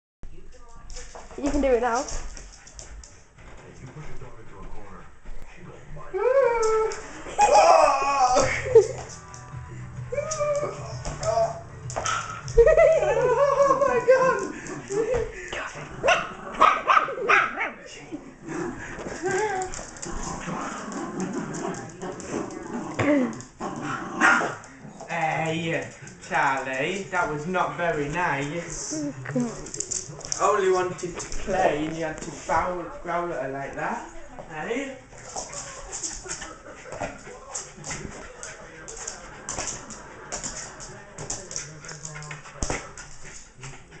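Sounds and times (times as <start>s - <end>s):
dog panting: 1.2s - 5.9s, 35.2s - 40.8s, 41.4s - 44.0s
dog whining: 10.1s - 11.7s
dog growling: 18.4s - 25.1s.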